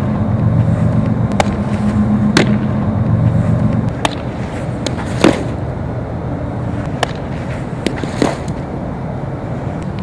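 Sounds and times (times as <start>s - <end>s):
low hum: 0.0s - 10.0s
balls smacking into a mitt: 1.0s - 1.7s, 2.3s - 2.7s, 3.9s - 5.6s, 6.9s - 8.6s.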